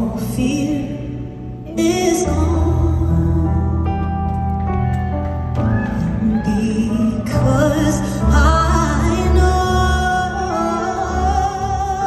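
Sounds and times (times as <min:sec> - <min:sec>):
person singing: 0:00.0 - 0:04.4, 0:06.0 - 0:12.0
bass: 0:00.0 - 0:12.0.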